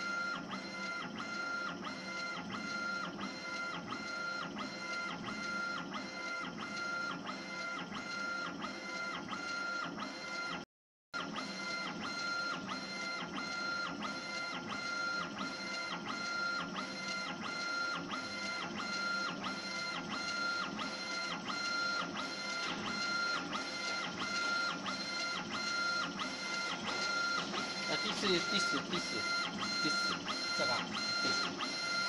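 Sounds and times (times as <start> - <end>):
drive motors whining: 21.7 - 32.0.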